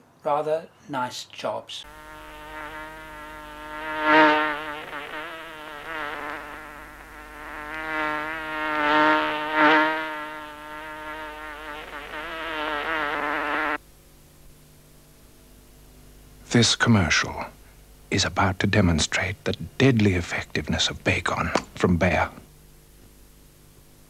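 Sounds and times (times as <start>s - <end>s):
housefly buzzing: 1.8s - 13.8s.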